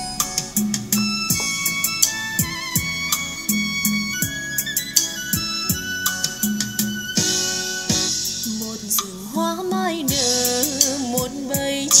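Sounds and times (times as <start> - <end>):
pop music with drum beat: 0.0 - 12.0
person singing: 8.4 - 12.0.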